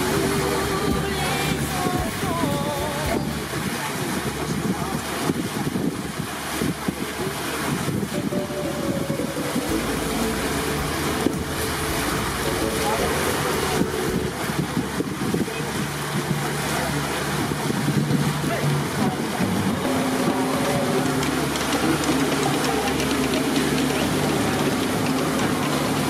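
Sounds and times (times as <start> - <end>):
boat motor running: 0.0 - 26.0
water noise: 0.0 - 26.0
wind: 0.0 - 26.0.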